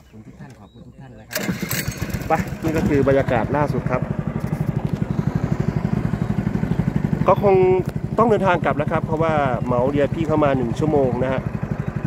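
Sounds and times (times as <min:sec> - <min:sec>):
small boat engine running: 0:00.0 - 0:12.0.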